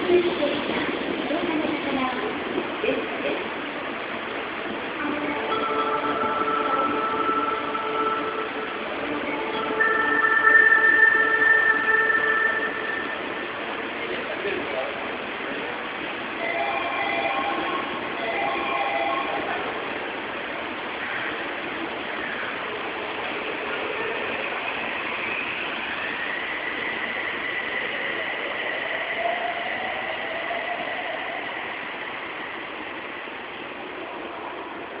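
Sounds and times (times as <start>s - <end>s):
train running noise: 0.0s - 35.0s
train motor inverter whine: 3.8s - 35.0s
electronic chime: 5.4s - 13.5s.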